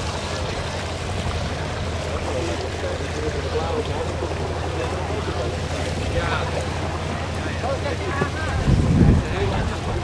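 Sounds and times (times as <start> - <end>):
faint voices: 0.4 - 10.0.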